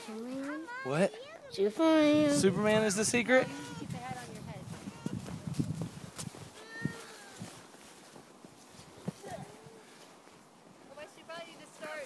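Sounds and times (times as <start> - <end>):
distant children calling out: 6.6 - 7.5.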